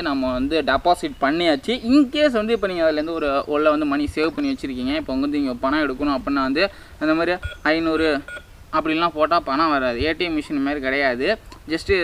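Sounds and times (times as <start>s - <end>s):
keypad short beeps: 7.4s - 8.5s.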